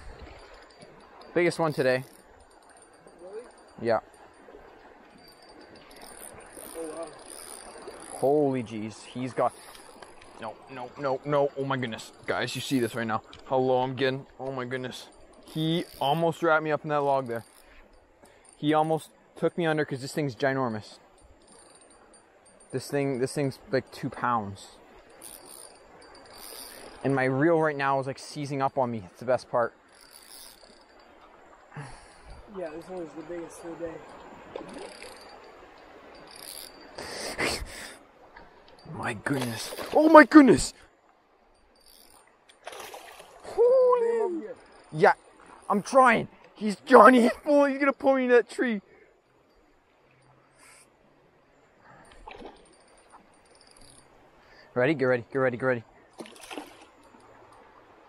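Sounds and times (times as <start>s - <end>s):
flowing creek water: 0.0s - 58.0s
outdoor background noise: 0.0s - 58.0s.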